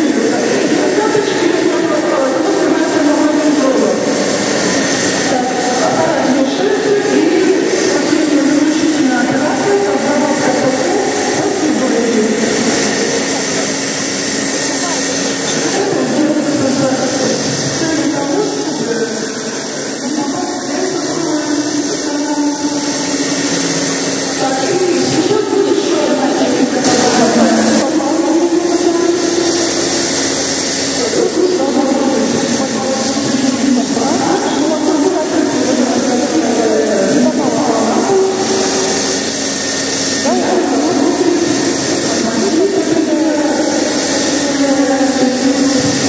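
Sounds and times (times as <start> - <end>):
people talking: 0.0 - 46.0
steady background noise: 0.0 - 46.0.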